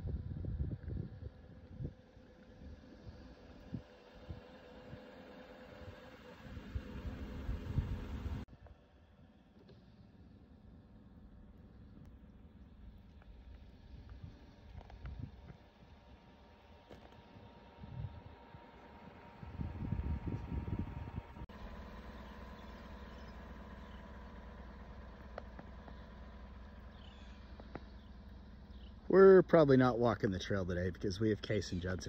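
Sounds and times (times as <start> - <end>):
wind rumbling on microphone: 0.0 - 5.0, 5.8 - 8.4, 13.4 - 16.2, 17.2 - 21.5.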